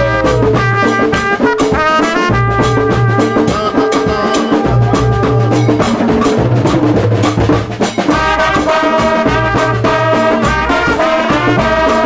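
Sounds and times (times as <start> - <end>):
trumpets on sustained notes: 0.0 - 5.9, 8.2 - 12.0
bass line: 0.0 - 12.0
drums: 0.0 - 12.0.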